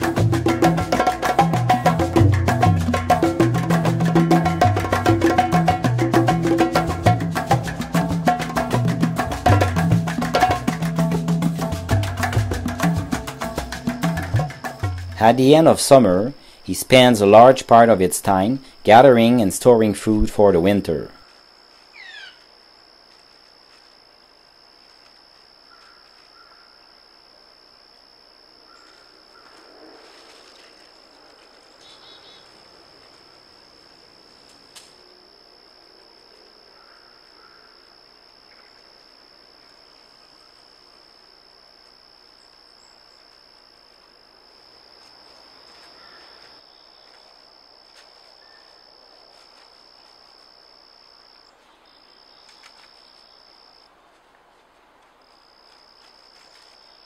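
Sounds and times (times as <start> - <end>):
high-pitched insect trill: 0.0 - 53.9, 55.2 - 57.0
dry leaves rustling: 20.0 - 26.7, 28.7 - 35.0, 43.2 - 50.8, 51.4 - 57.0.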